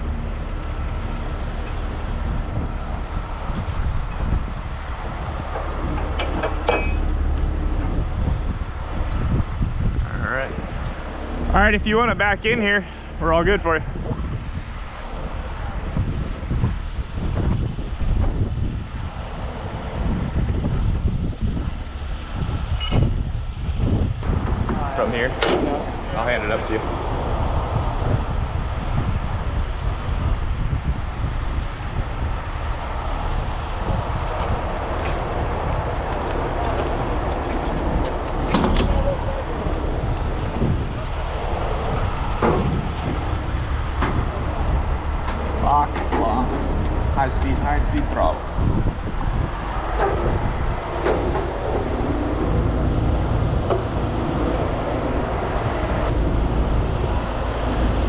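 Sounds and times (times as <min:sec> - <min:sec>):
diesel trucks rumbling: 0:00.0 - 0:58.0
wind on microphone: 0:00.0 - 0:58.0.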